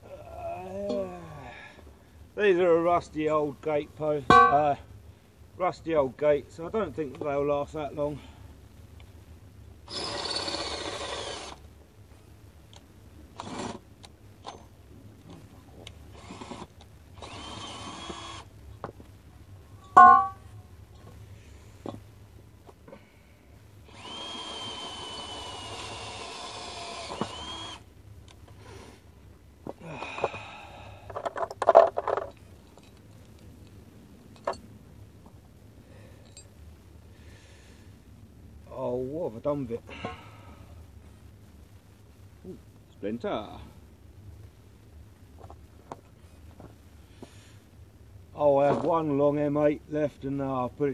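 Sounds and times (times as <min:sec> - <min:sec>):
power drill running: 0:09.9 - 0:11.6, 0:16.1 - 0:18.5, 0:23.8 - 0:27.9.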